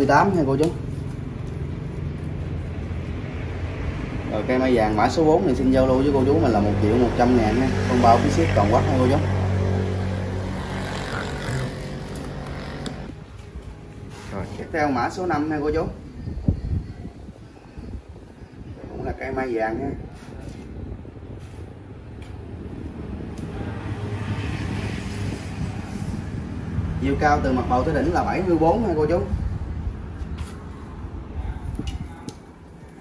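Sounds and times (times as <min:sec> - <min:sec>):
vehicle engine hum: 0:00.0 - 0:14.6.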